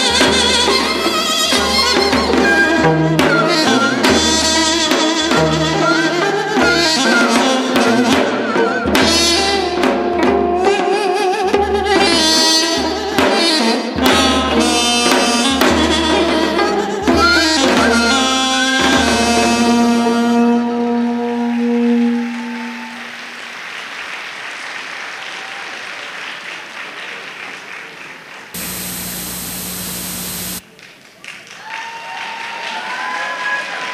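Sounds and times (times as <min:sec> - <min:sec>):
audience applause: 0:22.9 - 0:29.4, 0:30.4 - 0:33.9
steady hum: 0:28.6 - 0:30.6.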